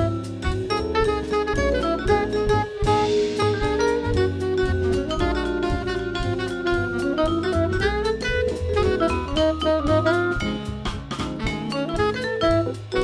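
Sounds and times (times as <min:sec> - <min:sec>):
bass line: 0:00.0 - 0:13.0
drums: 0:00.0 - 0:13.0
tenor saxophone: 0:00.0 - 0:13.0
vibraphone: 0:00.0 - 0:13.0.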